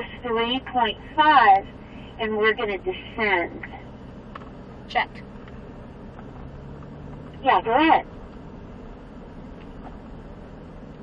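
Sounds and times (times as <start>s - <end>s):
truck engine and road rumble: 0.0s - 11.0s.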